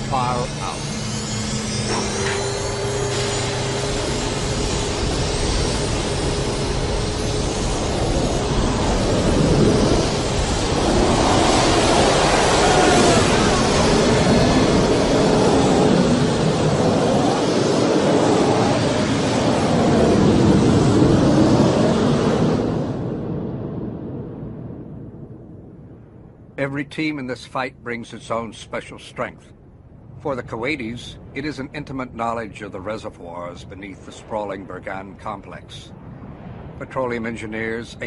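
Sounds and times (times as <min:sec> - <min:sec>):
jet engines roaring: 0:00.0 - 0:23.9.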